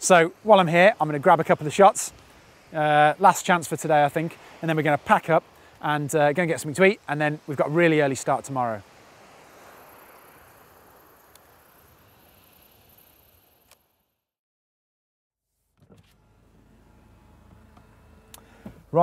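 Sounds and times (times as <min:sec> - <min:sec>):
faint open-air ambience: 0:00.0 - 0:14.2
low hum of car cabin: 0:15.8 - 0:19.0.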